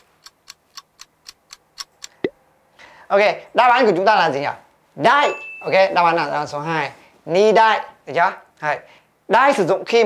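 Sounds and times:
clock-like ticks: 0:00.0 - 0:02.3.

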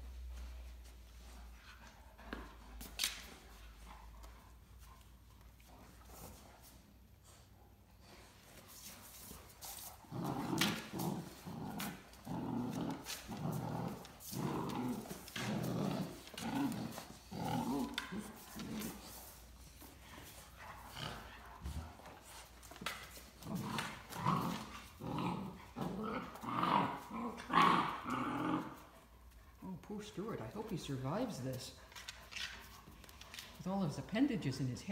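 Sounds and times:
dog growling in play: 0:09.7 - 0:19.2, 0:20.0 - 0:29.2.

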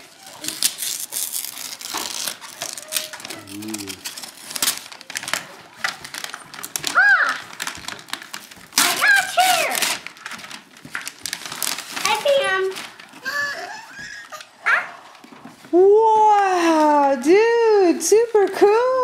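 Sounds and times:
wrapping paper tearing and crinkling: 0:00.0 - 0:17.6.

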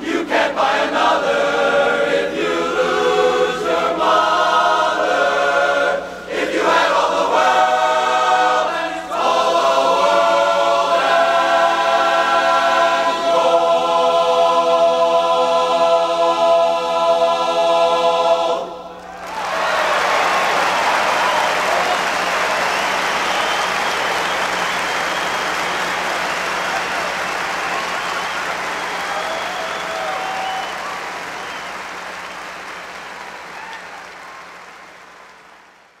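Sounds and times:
men's chorus holding a chord: 0:00.0 - 0:19.0
audience cheering: 0:18.9 - 0:35.8
audience applauding: 0:19.0 - 0:36.0.

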